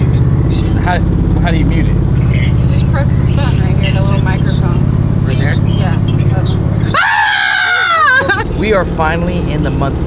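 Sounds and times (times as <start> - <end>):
road rumble inside moving car: 0.0 - 10.0
loud high-pitched scream: 6.9 - 8.3.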